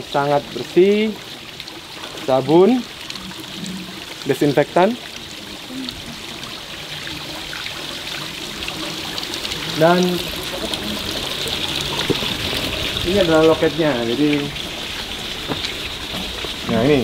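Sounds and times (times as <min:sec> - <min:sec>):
tap water running into steel basin: 0:00.0 - 0:17.0.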